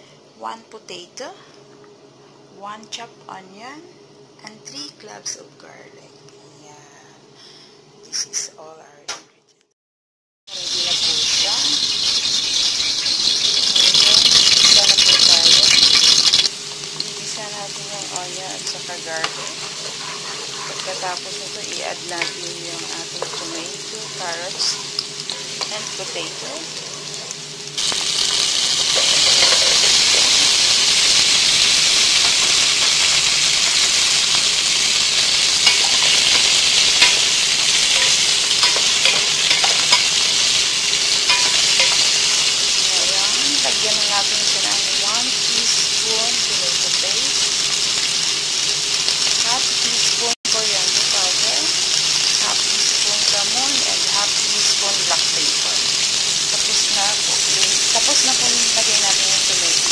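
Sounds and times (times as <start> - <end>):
vegetables sizzling in oil: 10.5 - 59.9.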